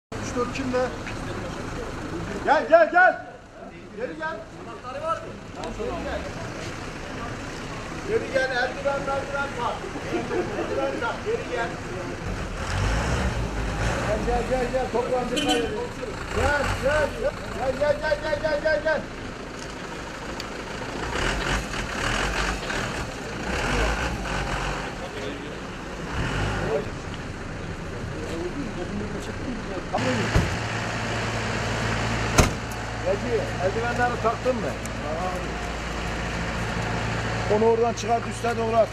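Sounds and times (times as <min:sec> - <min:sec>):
street noise: 0:00.1 - 0:38.9
vehicle engine rumbling: 0:00.1 - 0:38.9
sharp knock: 0:32.3 - 0:32.7.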